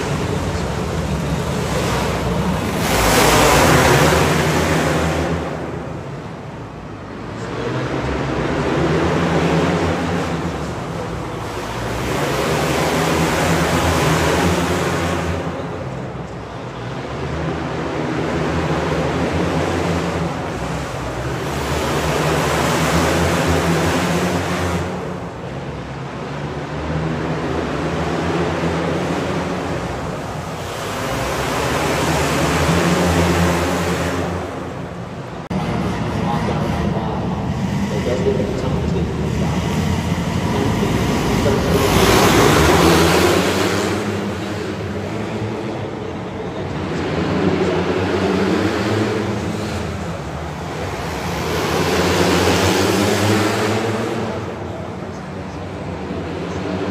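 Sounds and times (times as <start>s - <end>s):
kart engines racing: 0.0s - 56.9s.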